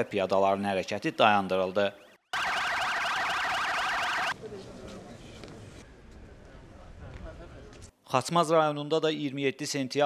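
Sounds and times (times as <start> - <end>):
police siren yelp: 2.0 - 4.4.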